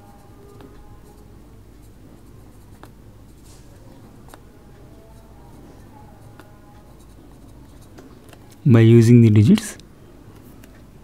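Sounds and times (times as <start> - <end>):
ballpoint pen writing on paper: 0.0 - 3.4.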